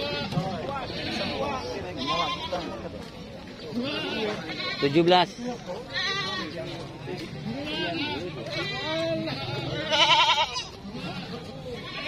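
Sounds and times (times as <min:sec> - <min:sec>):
goats bleating: 0:00.0 - 0:02.9, 0:03.7 - 0:12.0.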